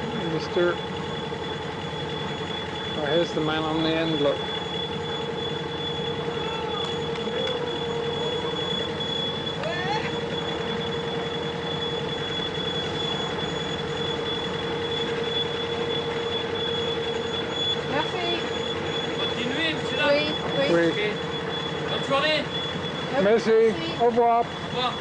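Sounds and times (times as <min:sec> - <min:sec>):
boat engine running: 0:00.0 - 0:25.0
thin steady whine: 0:00.0 - 0:25.0.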